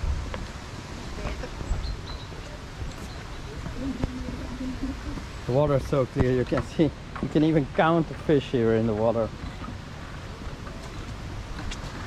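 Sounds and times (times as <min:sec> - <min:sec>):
footsteps on wooden boardwalk: 0:00.0 - 0:01.8, 0:02.4 - 0:05.5, 0:08.9 - 0:12.0
wind rumble on microphone: 0:00.0 - 0:07.2.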